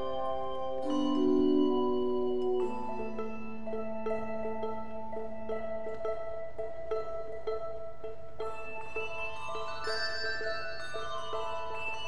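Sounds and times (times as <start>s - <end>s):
handbells ringing: 0.0s - 5.5s, 8.4s - 12.0s.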